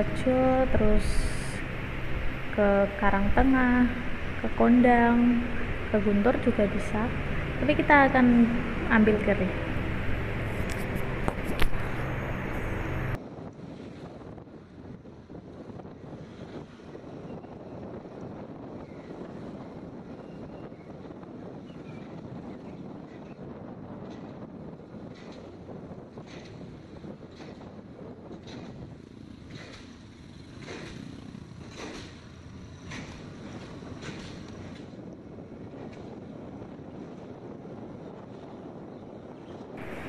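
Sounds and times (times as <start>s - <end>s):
scooter engine and road noise: 0.0s - 40.0s
wind rushing on microphone: 0.0s - 40.0s.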